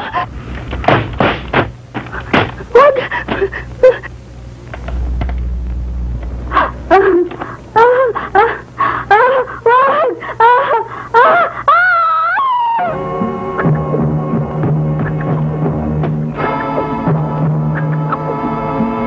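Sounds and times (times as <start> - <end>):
person wailing: 2.3 - 4.1, 6.6 - 13.0
sustained music notes: 12.9 - 19.0.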